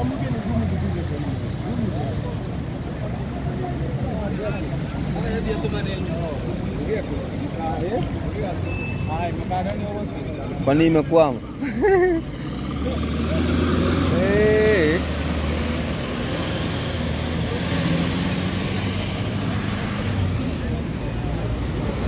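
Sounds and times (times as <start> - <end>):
traffic noise: 0.0 - 22.0
truck engine rumbling: 0.0 - 22.0.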